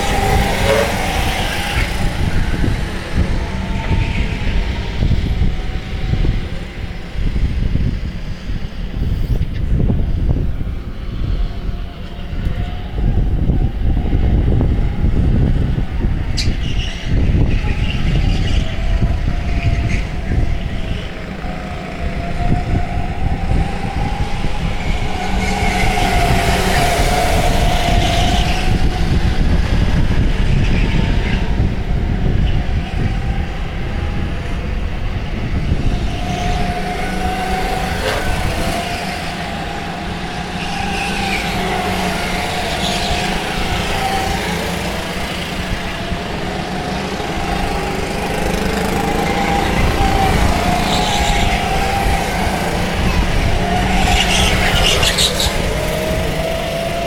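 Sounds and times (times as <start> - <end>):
go-kart engines passing: 0.0 - 57.0.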